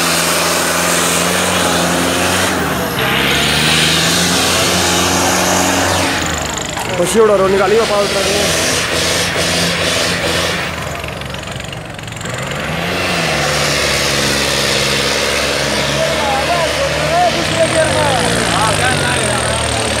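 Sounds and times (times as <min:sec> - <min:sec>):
tractor diesel engine labouring: 0:00.0 - 0:20.0
men shouting: 0:15.5 - 0:20.0.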